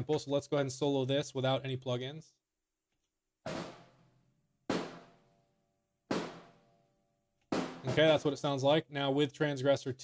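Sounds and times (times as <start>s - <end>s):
snare drum hits: 3.5s - 4.0s, 4.7s - 5.2s, 6.1s - 6.6s, 7.5s - 8.3s.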